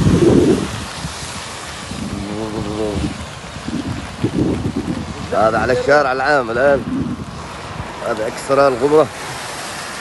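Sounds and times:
heavy rain: 0.0s - 10.0s
wind buffeting microphone: 0.0s - 10.0s
wind rushing: 0.0s - 10.0s.

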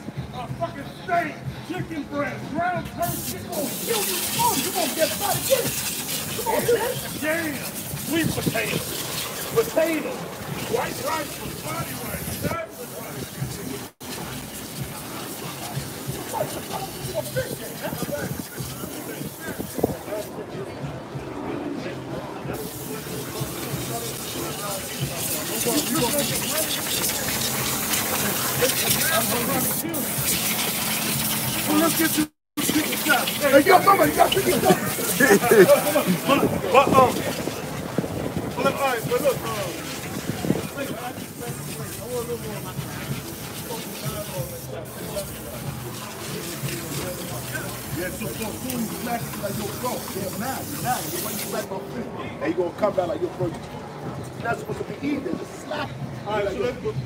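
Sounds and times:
indistinct chatter of voices: 0.0s - 57.0s
steady high hiss: 3.0s - 20.3s, 22.5s - 51.8s.

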